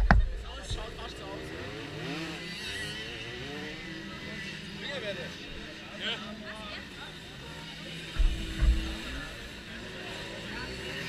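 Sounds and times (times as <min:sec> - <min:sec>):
indistinct distant voices: 0:00.0 - 0:11.0
low engine hum: 0:08.1 - 0:10.6.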